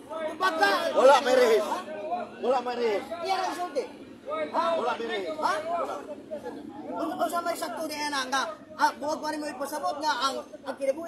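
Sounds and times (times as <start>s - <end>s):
men talking: 0.0s - 11.0s.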